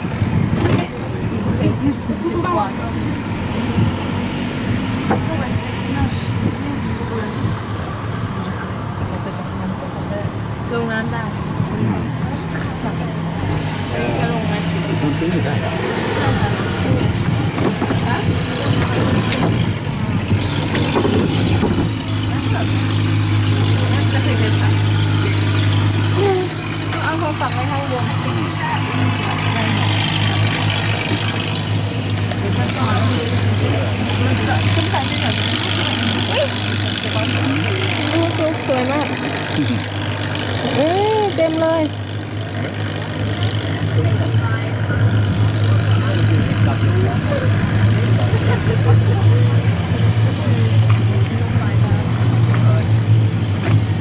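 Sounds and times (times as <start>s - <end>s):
people talking: 0.0s - 3.9s, 5.0s - 54.0s
boat engine humming: 0.0s - 54.0s.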